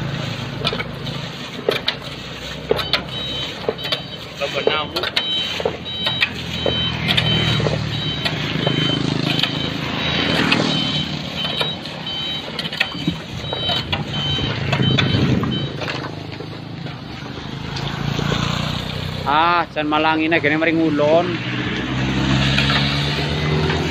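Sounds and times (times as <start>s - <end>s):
shovels scraping on gravel: 0.0s - 18.8s
truck reversing alarm beeping: 0.0s - 19.3s
diesel engine idling: 0.0s - 20.9s.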